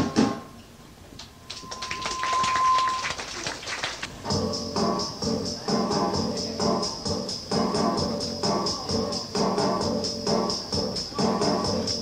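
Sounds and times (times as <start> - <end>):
audience clapping and cheering: 1.2 - 4.2
steady high tone: 1.3 - 3.5.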